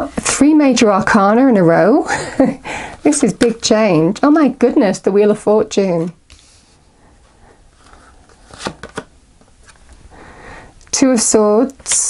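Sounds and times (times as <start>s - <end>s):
cards handled on cloth table: 6.3s - 6.8s.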